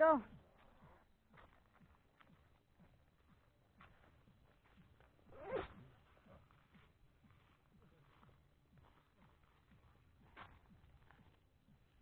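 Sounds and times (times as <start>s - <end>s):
short rasping swish: 5.3s - 5.8s.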